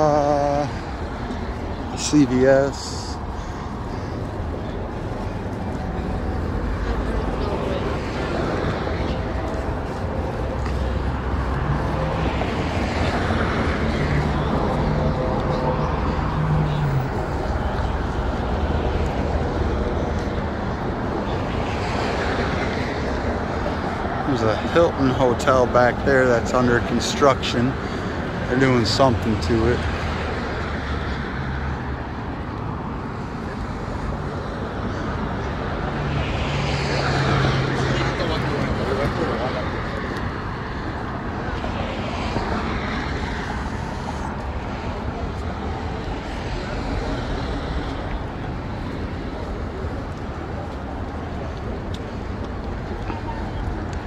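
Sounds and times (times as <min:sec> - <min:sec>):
passing vehicle engine hum: 0:00.0 - 0:26.9, 0:27.6 - 0:54.0
street traffic: 0:00.0 - 0:54.0.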